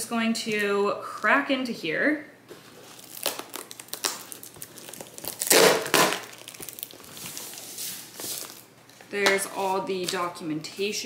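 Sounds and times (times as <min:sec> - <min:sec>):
shredded paper rustling: 0:02.6 - 0:08.7
cardboard box tearing open: 0:02.9 - 0:07.6.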